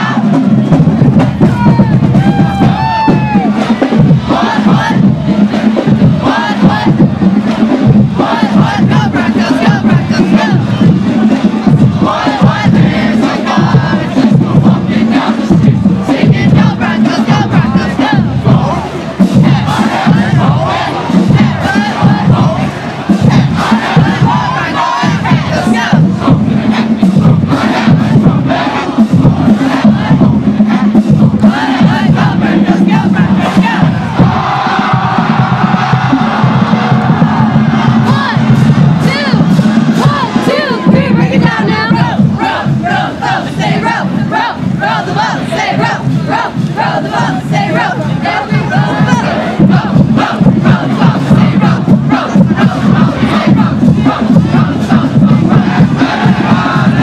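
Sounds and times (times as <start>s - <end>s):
rhythmic drum hits: 0.0s - 57.0s
band members shouting and chanting: 1.2s - 3.7s, 31.4s - 57.0s.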